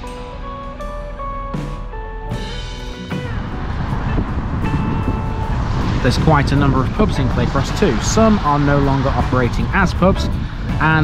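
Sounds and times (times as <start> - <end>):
background music with held notes: 0.0 - 11.0
car driving on wet street: 3.2 - 11.0.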